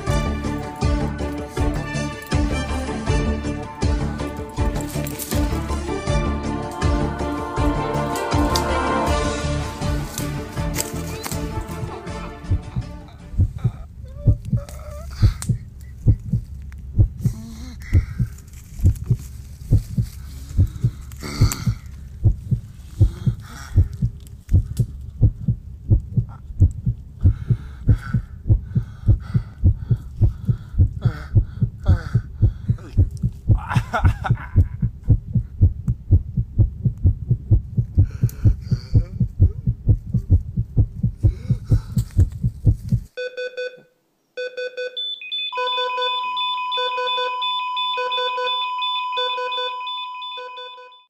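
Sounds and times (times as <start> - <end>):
heartbeat thuds: 12.4 - 43.2
strained breathing: 12.7 - 16.4, 17.2 - 18.7, 20.0 - 25.0, 27.2 - 33.2, 38.0 - 39.3, 41.1 - 42.6
electronic beeps: 44.4 - 51.0
long steady tone: 44.5 - 51.0.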